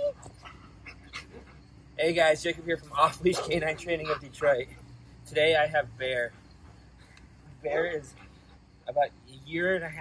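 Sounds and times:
dog whimpering: 0.0s - 1.7s.

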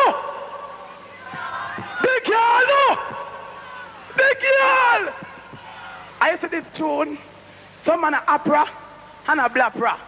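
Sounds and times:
crowd voices: 0.6s - 6.2s
man shouting over pa: 1.2s - 6.2s.

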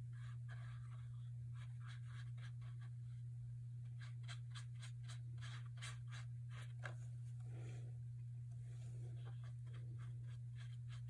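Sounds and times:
steady low hum: 0.0s - 11.0s
paintbrush stroking across paper: 8.7s - 11.0s.

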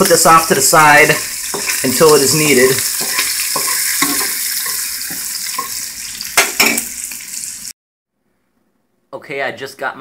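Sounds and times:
meat sizzling in frying pan: 0.0s - 7.7s.

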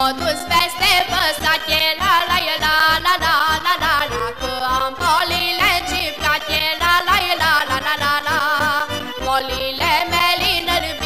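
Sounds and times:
folk band playing: 0.0s - 11.0s
young woman singing: 0.0s - 11.0s.

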